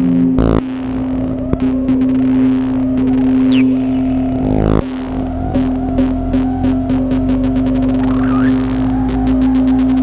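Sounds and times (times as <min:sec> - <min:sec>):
clicking pulses: 0:00.0 - 0:10.0
synthesizer droning tone: 0:00.0 - 0:10.0.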